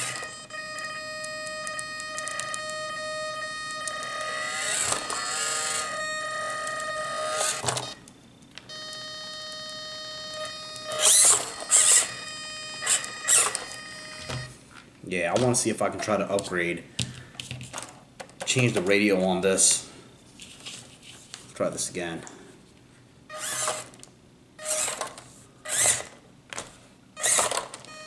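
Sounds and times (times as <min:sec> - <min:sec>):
electric motor whining: 0:00.0 - 0:08.0, 0:08.7 - 0:14.5, 0:23.3 - 0:24.0, 0:24.6 - 0:25.1, 0:25.7 - 0:26.2, 0:27.2 - 0:27.6.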